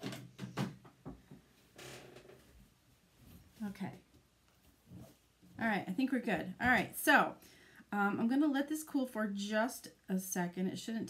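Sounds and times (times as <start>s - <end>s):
rustling scrape: 4.6s - 5.3s.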